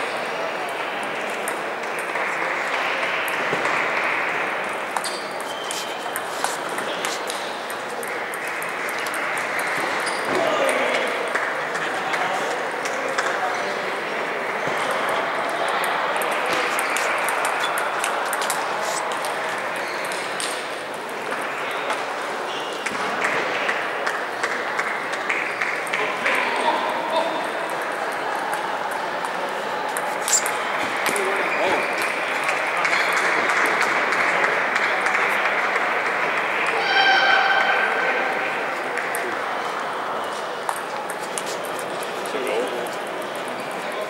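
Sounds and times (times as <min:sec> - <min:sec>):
crowd chatter: 0:00.0 - 0:44.0
hubbub of a hall: 0:00.0 - 0:44.0
table tennis balls clicking: 0:27.4 - 0:31.3.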